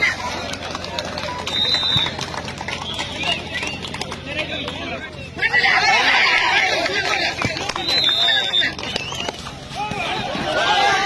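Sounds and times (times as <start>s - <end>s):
high whistle-like tone: 1.5s - 2.2s, 7.8s - 9.5s
people shouting: 5.4s - 8.7s, 9.6s - 11.0s.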